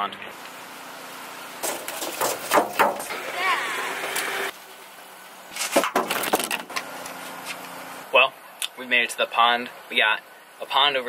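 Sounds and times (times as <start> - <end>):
wavering voice-like sound: 3.1 - 4.0.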